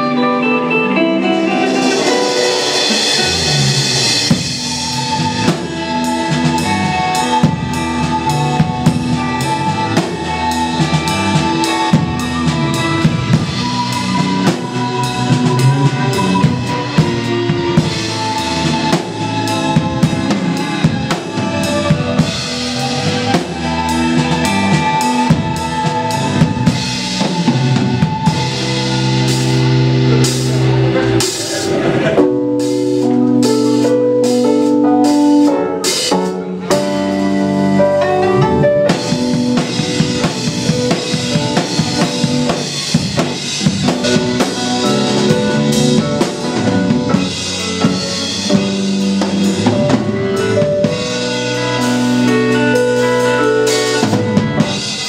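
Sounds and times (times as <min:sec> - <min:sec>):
drum kit: 0:00.0 - 0:55.0
rock band playing: 0:00.0 - 0:55.0.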